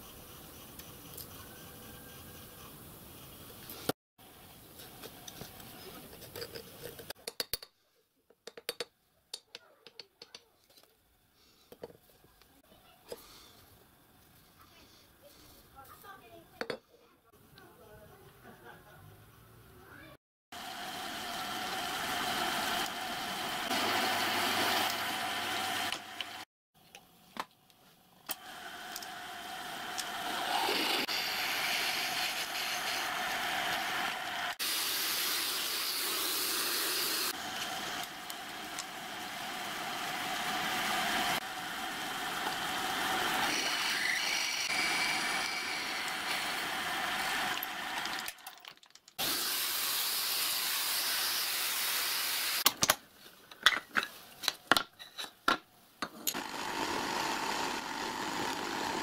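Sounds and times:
drill motor whine: 0:28.3 - 0:48.2, 0:56.4 - 0:59.0
drill bit cutting steel: 0:28.3 - 0:48.3, 0:56.3 - 0:59.0.

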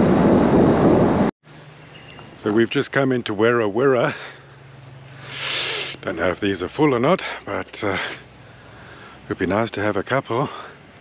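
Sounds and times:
people talking: 0:02.4 - 0:04.3, 0:05.8 - 0:08.2, 0:09.3 - 0:10.7.

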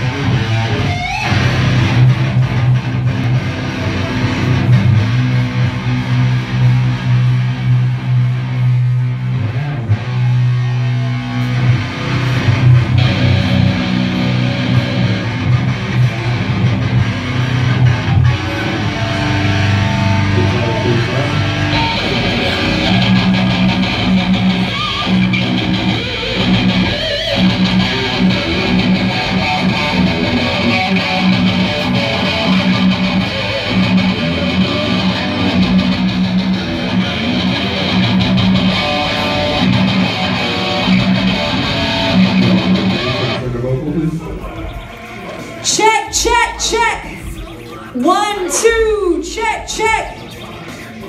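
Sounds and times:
electric guitars and bass chords: 0:00.0 - 0:51.0.

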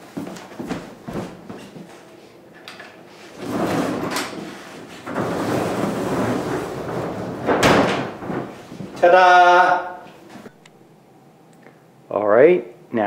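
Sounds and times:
wooden sliding door rumbling: 0:02.7 - 0:10.5.

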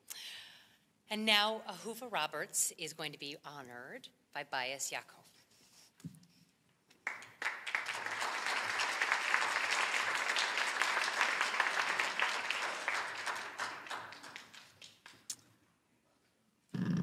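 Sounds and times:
audience applauding: 0:07.0 - 0:15.3.

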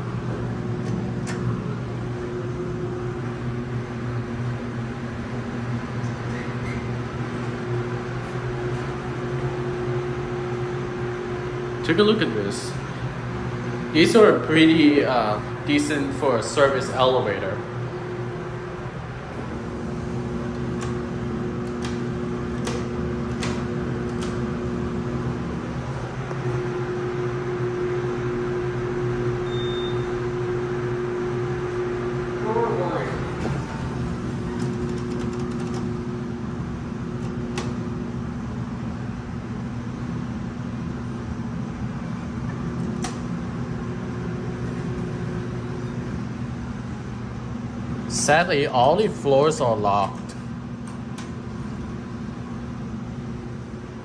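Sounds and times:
elevator mechanical hum: 0:00.0 - 0:54.0
short high beep: 0:29.4 - 0:30.1.

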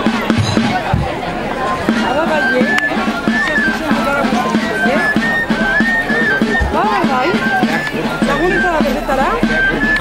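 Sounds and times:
high piped folk melody: 0:00.0 - 0:10.0
people chattering: 0:00.0 - 0:10.0.

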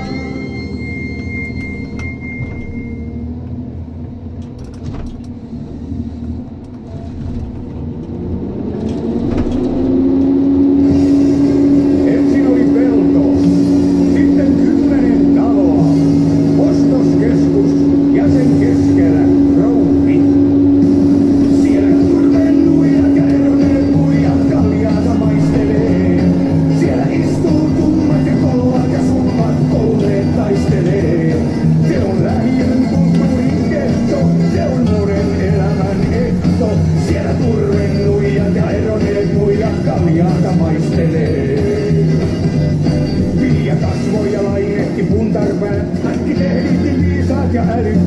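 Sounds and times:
harvester diesel engine and hydraulics: 0:00.0 - 0:48.0.

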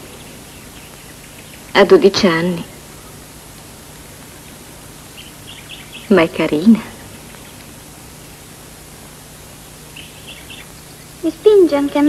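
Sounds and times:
faint low hum: 0:00.0 - 0:12.0
steady film soundtrack hiss: 0:00.0 - 0:12.0.

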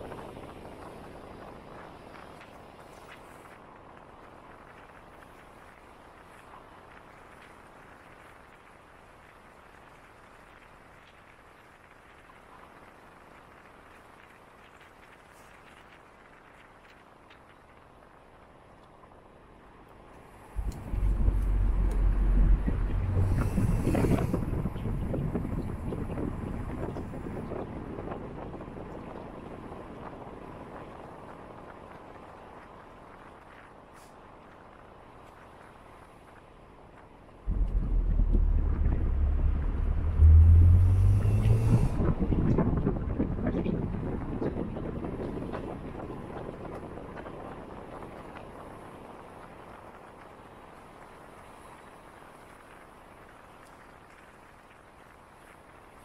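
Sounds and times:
wind on microphone: 0:00.0 - 0:07.6, 0:20.4 - 0:33.9, 0:37.4 - 0:54.0
car engine rumble: 0:20.6 - 0:27.0, 0:37.5 - 0:43.3.

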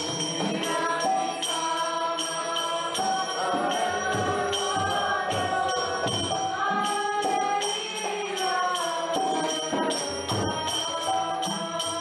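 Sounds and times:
group devotional singing: 0:00.0 - 0:12.0
hand cymbals ringing: 0:00.0 - 0:12.0.

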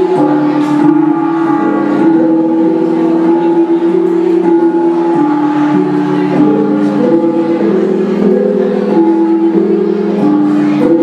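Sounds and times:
gong ensemble playing: 0:00.0 - 0:11.0.

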